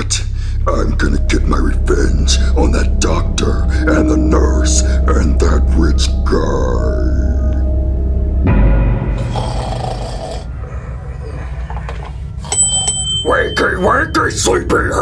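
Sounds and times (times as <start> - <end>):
ominous music drone: 0.0 - 15.0
thin high whine: 0.7 - 8.6.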